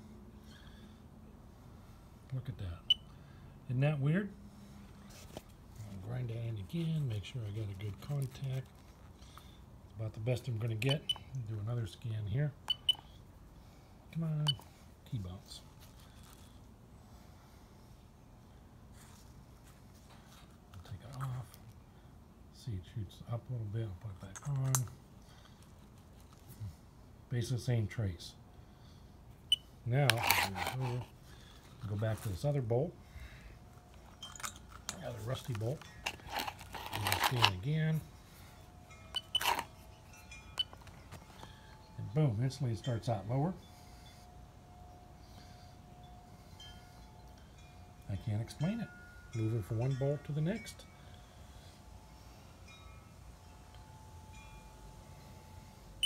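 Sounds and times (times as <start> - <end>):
soft chime-like ringing tones: 10.7 - 13.2, 31.8 - 56.0
device scraping on concrete: 30.1 - 31.1.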